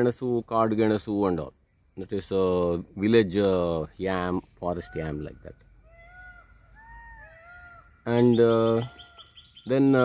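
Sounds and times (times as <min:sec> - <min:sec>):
faint animal calls: 0:04.6 - 0:10.0.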